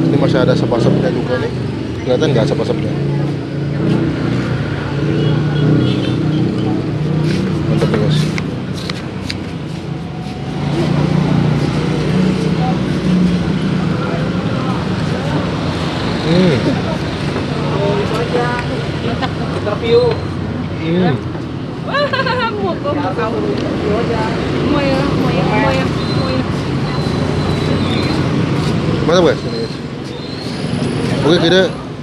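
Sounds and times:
voices talking: 0:00.0 - 0:09.0, 0:10.6 - 0:32.0
street traffic noise: 0:00.0 - 0:32.0.

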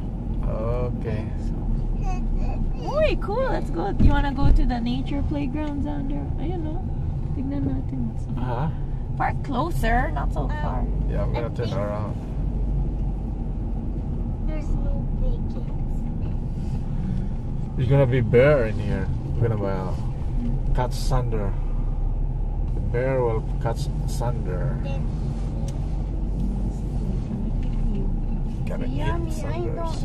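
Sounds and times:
car engine and tyres rumbling: 0:00.0 - 0:30.0.

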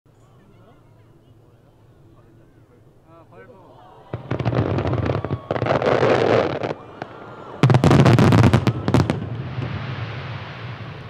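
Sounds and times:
fireworks bangs: 0:04.1 - 0:11.0
fireworks crackling: 0:04.1 - 0:11.0.

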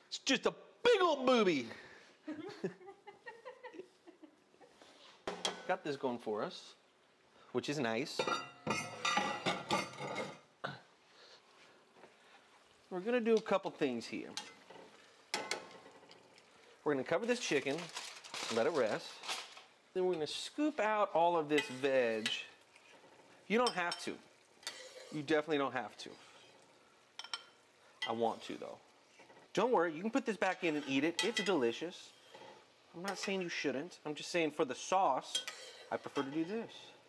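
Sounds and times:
metal tongs clinking on pot: 0:08.2 - 0:10.4, 0:14.2 - 0:16.4, 0:21.4 - 0:25.3, 0:27.2 - 0:28.6, 0:30.3 - 0:33.4, 0:35.3 - 0:36.6
serving spoon clinking dishes: 0:08.2 - 0:10.4, 0:23.6 - 0:25.2, 0:27.2 - 0:28.2, 0:30.6 - 0:31.6, 0:35.3 - 0:36.4.

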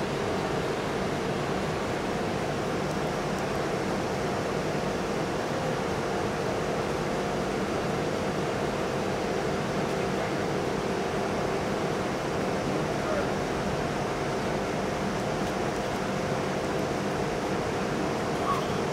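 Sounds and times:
low machinery hum: 0:00.0 - 0:18.9
ventilation rushing noise: 0:00.0 - 0:18.9.

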